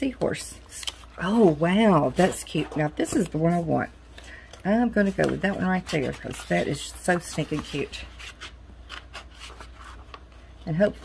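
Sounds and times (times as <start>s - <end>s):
paper rustling: 5.0s - 11.0s.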